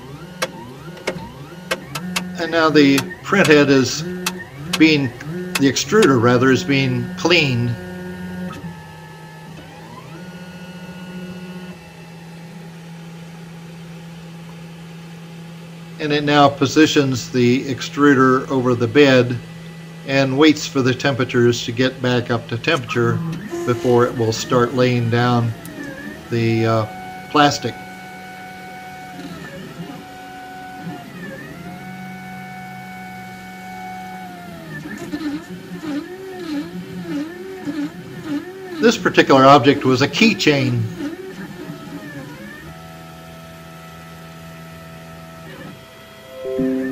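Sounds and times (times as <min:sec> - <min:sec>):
stepper motors whining: 0:00.0 - 0:11.8, 0:22.0 - 0:28.2.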